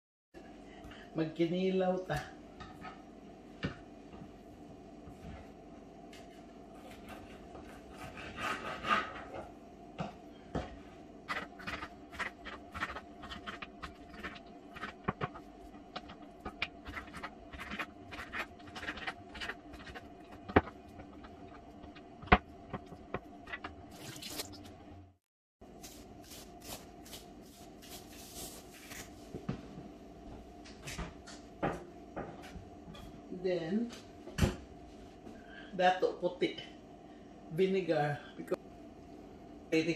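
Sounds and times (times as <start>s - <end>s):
knife scraping fish: 6.8s - 9.3s, 11.3s - 15.4s, 16.0s - 21.1s.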